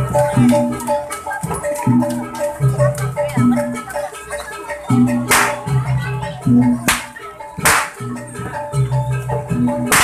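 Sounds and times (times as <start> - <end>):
gamelan music: 0.0 - 10.0
whip cracks: 6.9 - 8.0.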